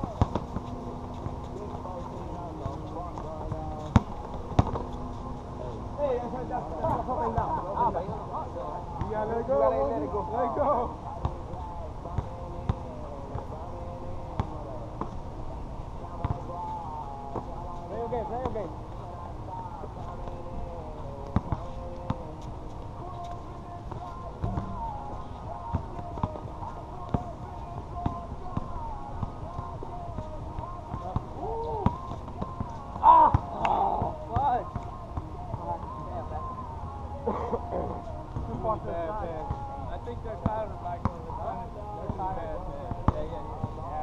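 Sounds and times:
players calling out: 0:24.0 - 0:39.6
people shouting: 0:31.4 - 0:32.1, 0:33.0 - 0:34.6.

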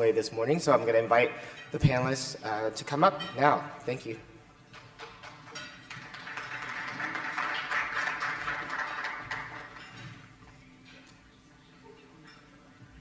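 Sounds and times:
audience applauding: 0:05.2 - 0:10.0.

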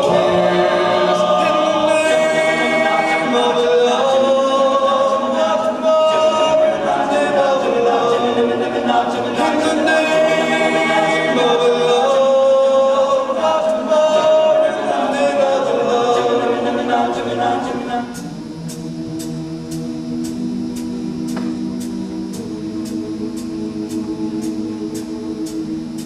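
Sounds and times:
male a cappella group singing: 0:00.0 - 0:18.4.

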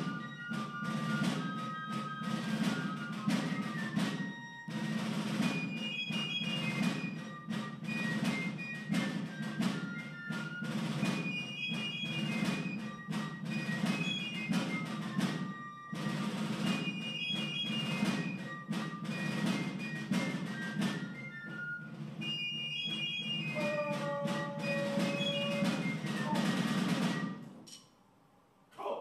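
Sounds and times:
military march on drums: 0:00.0 - 0:27.5.

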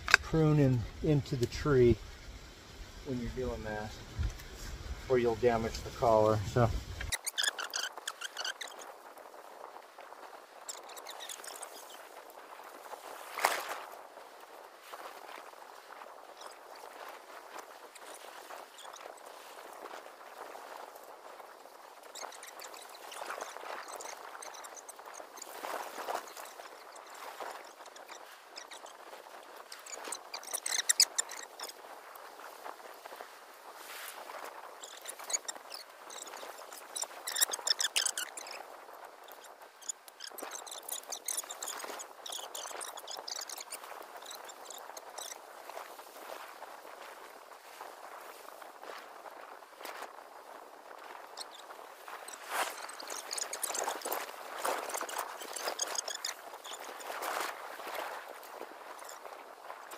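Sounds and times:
leafy branches rustling and crackling: 0:00.0 - 0:59.9
footsteps through brush: 0:45.4 - 0:59.9.

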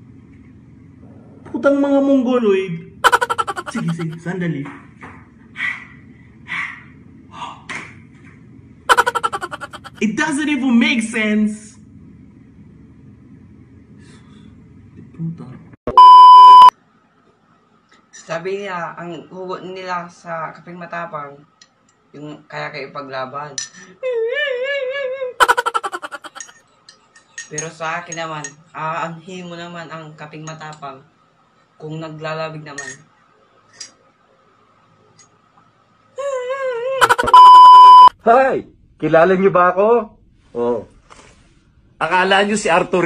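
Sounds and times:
electronic censor bleep: 0:15.9 - 0:16.7, 0:37.0 - 0:38.1.

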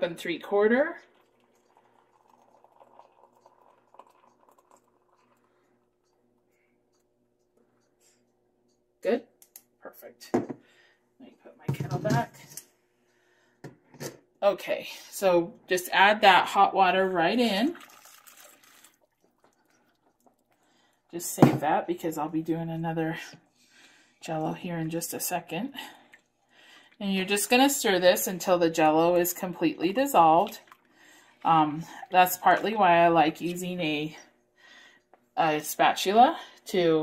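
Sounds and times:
water pouring into glass: 0:01.0 - 0:05.9, 0:17.7 - 0:20.7.

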